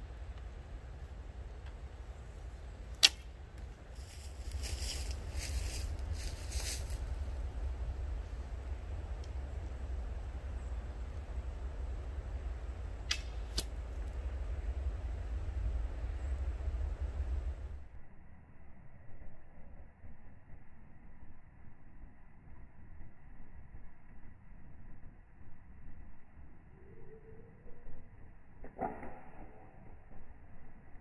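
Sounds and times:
bowstring snapping: 0:02.9 - 0:03.7, 0:13.0 - 0:14.2
quiet clicks: 0:09.2 - 0:09.4.

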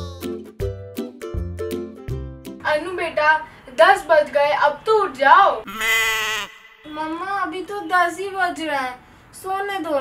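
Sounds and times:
sheep bleating: 0:05.7 - 0:06.9.

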